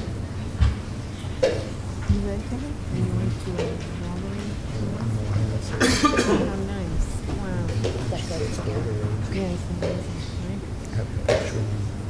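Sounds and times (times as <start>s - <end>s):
people shuffling: 2.0s - 12.0s
chatter of children and adults: 2.1s - 12.0s
loud cough: 5.8s - 6.6s.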